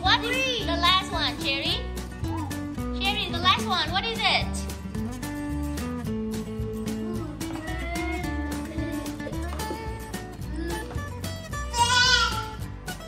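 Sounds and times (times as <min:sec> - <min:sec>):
strummed acoustic guitar music: 0:00.0 - 0:13.0
child's high voice: 0:07.1 - 0:09.9, 0:11.7 - 0:12.6.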